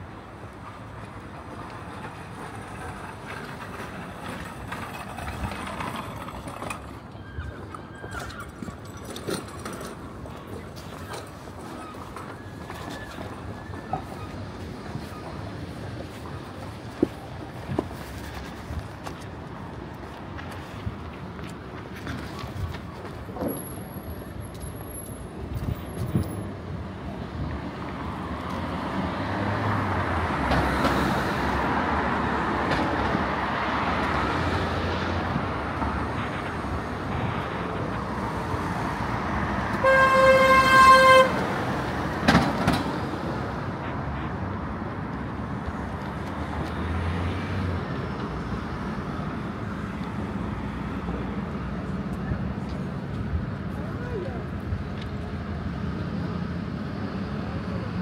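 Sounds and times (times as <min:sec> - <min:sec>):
city street traffic: 0:00.0 - 0:58.0
vehicle horn honking: 0:39.8 - 0:41.4.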